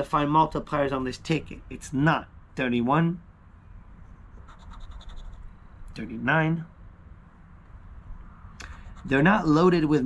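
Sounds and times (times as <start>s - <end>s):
coin scraping a scratch card: 4.4s - 5.4s.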